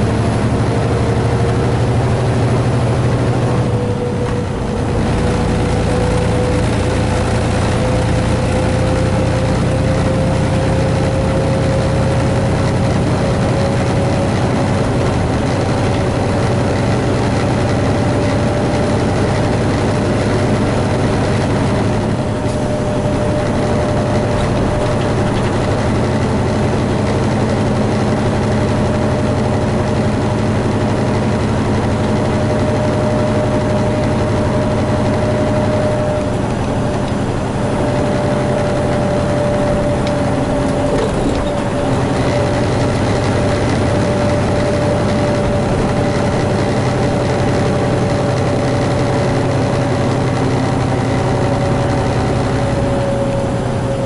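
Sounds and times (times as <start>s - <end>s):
rising engine whine: 0.0s - 54.0s
truck diesel engine: 0.0s - 54.0s.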